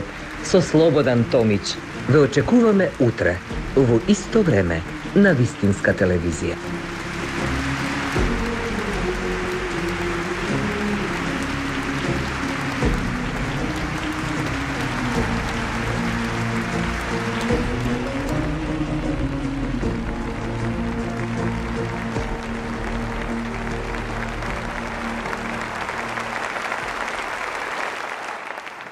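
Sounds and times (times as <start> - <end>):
slow sustained chords music: 0.0 - 27.5
applause: 0.0 - 28.9.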